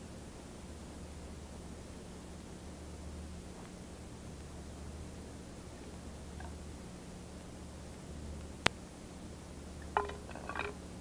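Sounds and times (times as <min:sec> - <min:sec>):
faint steady hum: 0:00.0 - 0:11.0
small clinks and knocks: 0:09.8 - 0:10.8.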